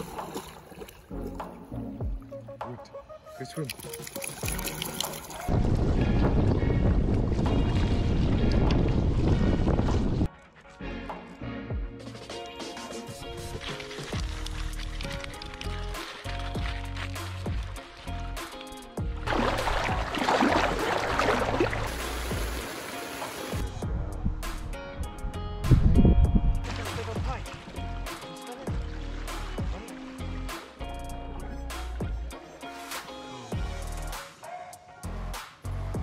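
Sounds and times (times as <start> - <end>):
water splashing and sloshing: 0.0 - 2.6, 3.6 - 10.5, 12.8 - 23.9, 26.5 - 31.2
background music: 0.0 - 36.0
wind buffeting microphone: 5.5 - 10.3, 23.8 - 26.7.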